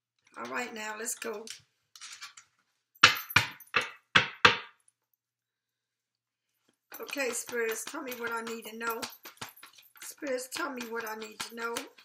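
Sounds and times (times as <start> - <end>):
sharp ringing knocks: 3.0 - 4.7.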